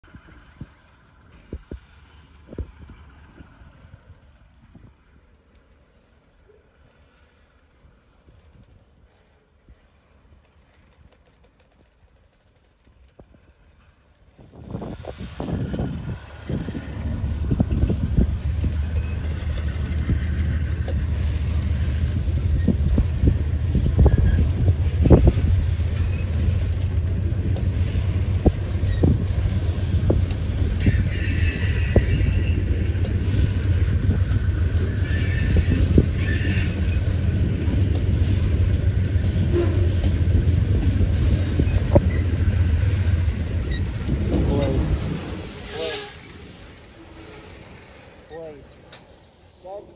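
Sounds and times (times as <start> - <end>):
train wheels rumbling on rail: 0.0 - 49.9.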